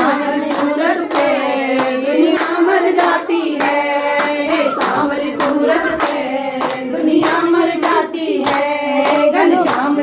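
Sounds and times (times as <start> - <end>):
rhythmic hand clapping: 0.0 - 10.0
women singing devotional song: 0.0 - 10.0.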